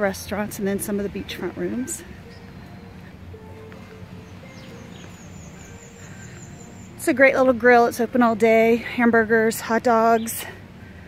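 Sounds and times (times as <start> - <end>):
small bird chirping rapidly: 4.2 - 7.2.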